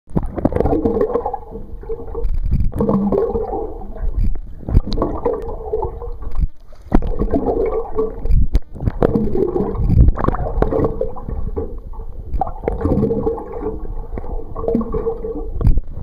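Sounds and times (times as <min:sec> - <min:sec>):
underwater sloshing and gurgling: 0:00.1 - 0:16.0
sharp clicks: 0:02.2 - 0:02.9.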